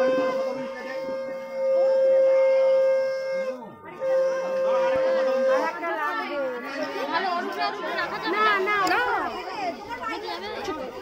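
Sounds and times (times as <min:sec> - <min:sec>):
conch shell blast: 0:00.0 - 0:05.8
faint voices: 0:00.0 - 0:11.0.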